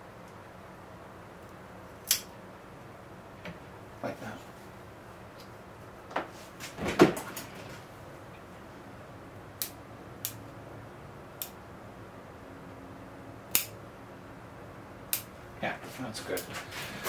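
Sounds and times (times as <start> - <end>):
pruning cutters snipping twigs: 2.0 - 2.3, 13.5 - 13.8.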